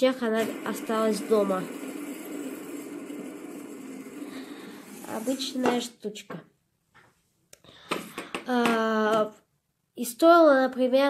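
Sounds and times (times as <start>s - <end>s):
fidget spinner whirring: 0.0s - 5.9s.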